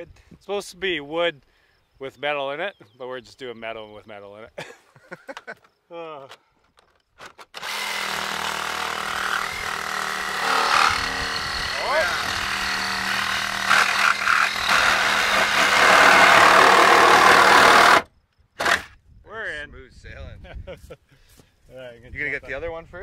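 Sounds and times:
reciprocating saw cutting steel: 0:07.6 - 0:18.0, 0:18.6 - 0:18.9.

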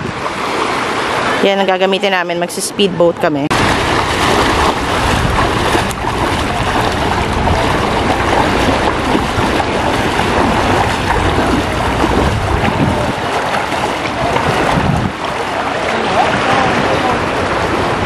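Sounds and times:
wind buffeting microphone: 0:00.0 - 0:01.4, 0:03.1 - 0:18.0
feet wading through water: 0:00.0 - 0:01.6, 0:03.5 - 0:18.0
shallow surf washing: 0:00.0 - 0:18.0.

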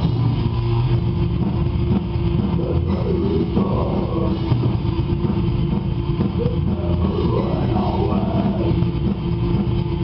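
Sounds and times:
live metal band playing: 0:00.0 - 0:10.0.

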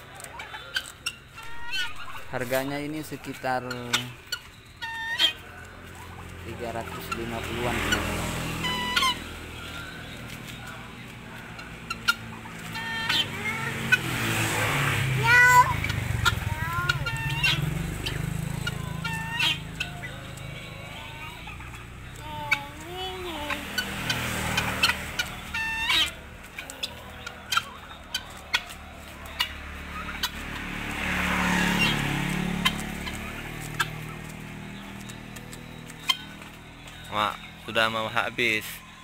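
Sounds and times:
birds giving short calls: 0:00.4 - 0:38.1.

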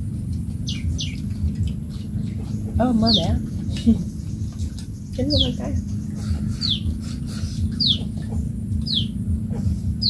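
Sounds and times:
steady low rumble: 0:00.0 - 0:10.0
bird chirps: 0:00.6 - 0:10.0.

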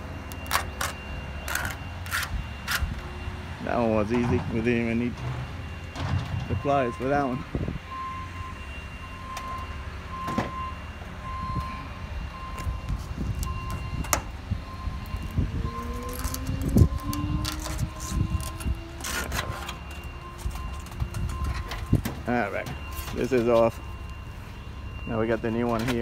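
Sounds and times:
low rising tone: 0:07.6 - 0:22.0.

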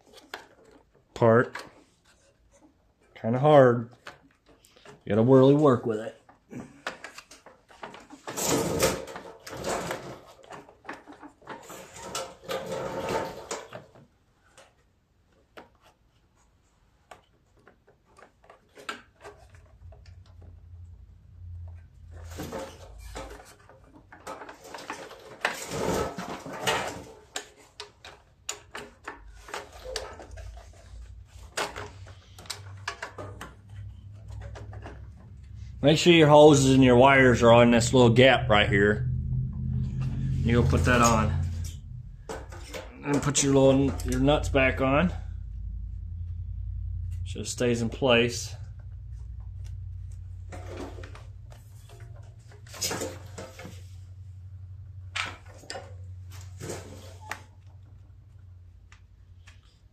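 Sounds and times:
plastic and metal parts rattling: 0:00.0 - 0:37.6, 0:39.6 - 0:47.5, 0:48.4 - 0:54.0
faint low hum: 0:16.3 - 0:59.9.

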